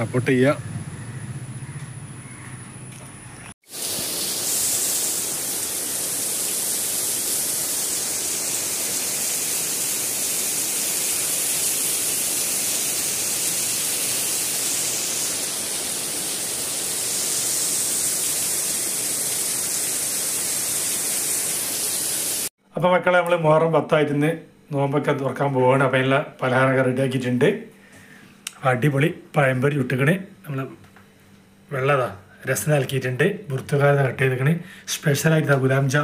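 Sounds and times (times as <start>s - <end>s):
heavy rain on foliage: 3.7s - 22.5s.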